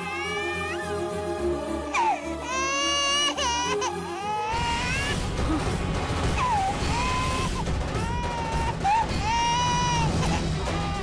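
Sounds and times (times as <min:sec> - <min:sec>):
background music with steady pulse: 0:00.0 - 0:11.0.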